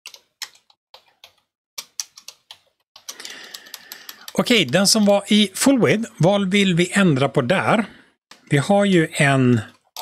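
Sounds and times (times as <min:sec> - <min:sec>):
keyboard keys clicking: 0:00.1 - 0:05.2.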